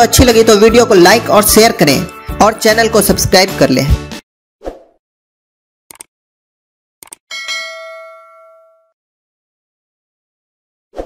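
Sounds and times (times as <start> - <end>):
short clicks: 5.9 - 6.1, 7.0 - 7.2
notification bell ding: 7.3 - 9.0.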